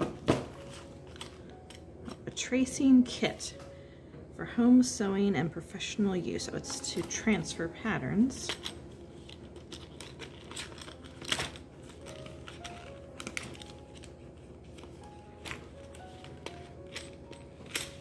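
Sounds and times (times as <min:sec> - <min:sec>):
soft slow background music: 0:00.0 - 0:18.0
packaging being handled: 0:08.5 - 0:18.0.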